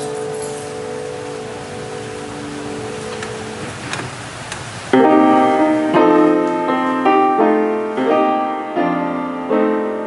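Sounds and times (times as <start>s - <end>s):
keyboard chord: 0.0s - 10.0s
steady hiss: 0.0s - 10.0s.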